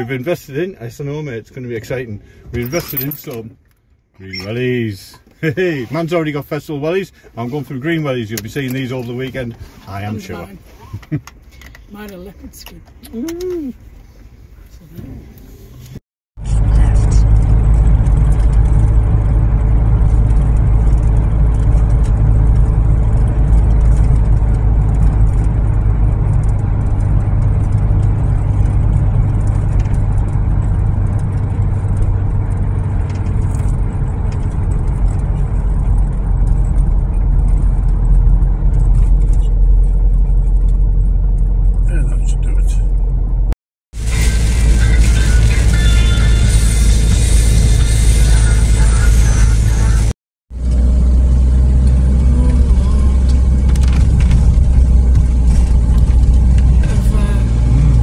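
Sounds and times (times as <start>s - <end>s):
van engine rumble in tunnel: 12.8s - 58.0s
music playing: 44.0s - 50.1s.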